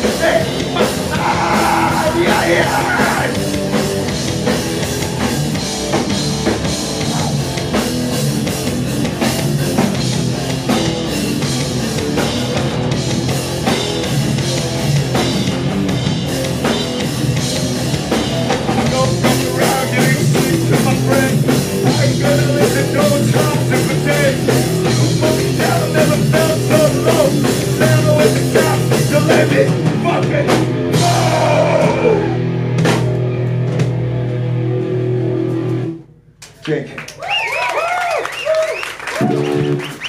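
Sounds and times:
electric guitar: 0.0 - 36.1, 39.0 - 40.0
drum kit: 0.0 - 36.8, 38.5 - 40.0
bass guitar: 0.0 - 36.9, 38.8 - 40.0.

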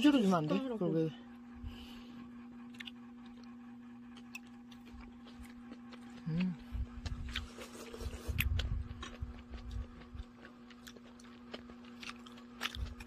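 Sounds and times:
steady low hum: 0.0 - 13.0
chewing: 2.6 - 13.0.

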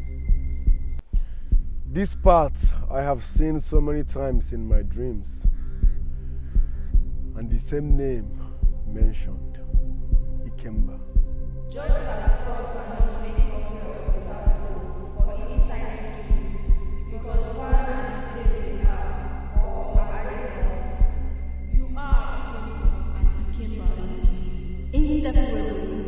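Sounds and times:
heartbeat-like thump: 0.0 - 25.9
steady low hum: 0.0 - 26.0.

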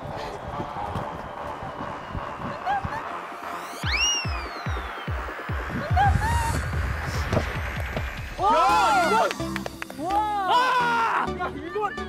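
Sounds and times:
fast electronic bass-drum beat: 0.0 - 9.9.

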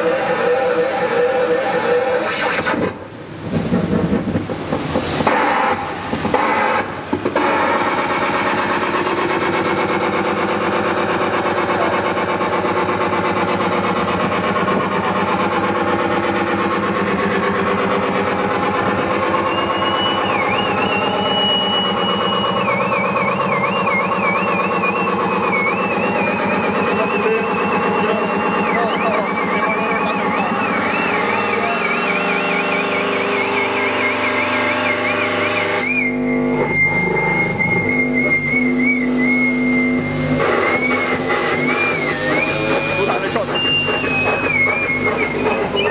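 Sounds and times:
distorted electronic noise: 0.0 - 45.9
high wavering whistle-like tone: 9.4 - 45.9.

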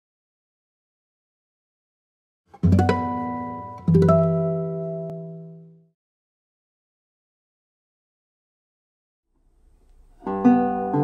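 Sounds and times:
plucked guitar chords: 2.6 - 5.9, 10.2 - 11.0.

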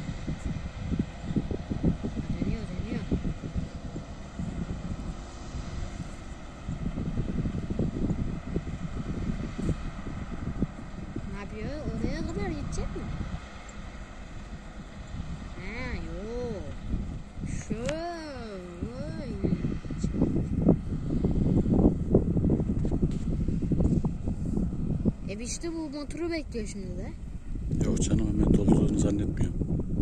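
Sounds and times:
distant combine harvester running: 0.0 - 30.0
wind rumble on microphone: 0.0 - 30.0.

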